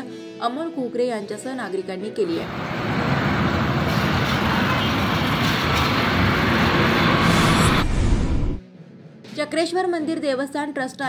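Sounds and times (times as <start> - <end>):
highway traffic rumble: 2.4 - 8.6
large truck passing: 2.4 - 8.6.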